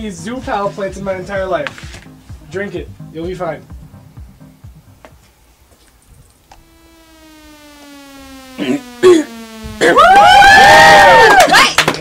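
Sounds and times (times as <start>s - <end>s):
sliding electronic tone: 6.5s - 11.3s.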